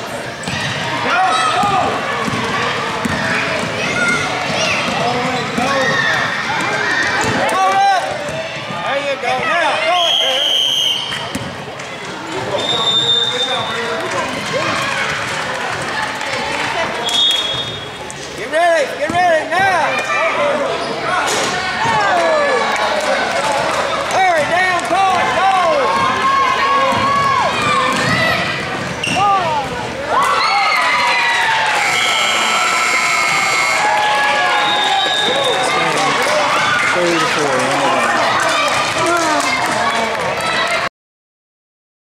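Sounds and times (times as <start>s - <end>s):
voices of players and crowd: 0.0s - 40.9s
basketball bouncing: 1.6s - 7.4s, 11.2s - 11.6s, 26.8s - 29.3s.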